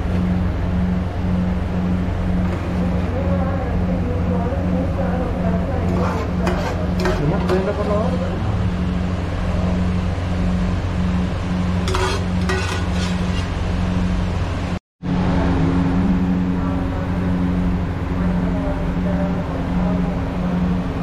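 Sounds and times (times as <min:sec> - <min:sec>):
low machine hum: 0:00.0 - 0:21.0.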